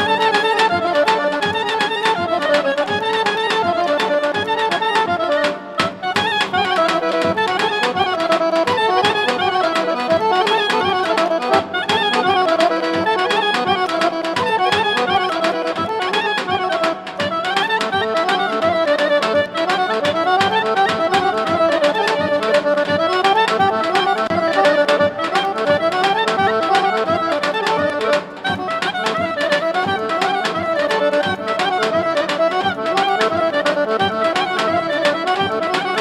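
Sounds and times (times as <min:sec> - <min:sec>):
folk dance music: 0:00.0 - 0:36.0.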